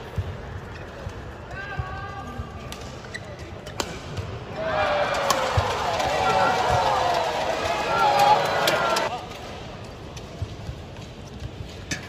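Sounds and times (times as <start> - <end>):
arena crowd voices: 4.3 - 9.4.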